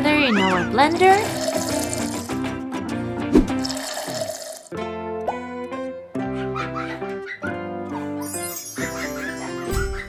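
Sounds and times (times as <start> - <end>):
background music: 0.0 - 10.0
water pouring into plastic cup: 1.0 - 2.4, 3.5 - 4.7.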